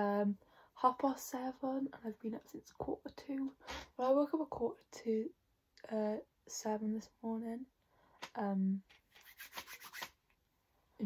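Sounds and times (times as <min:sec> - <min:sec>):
palms rubbing together: 0:08.9 - 0:10.3.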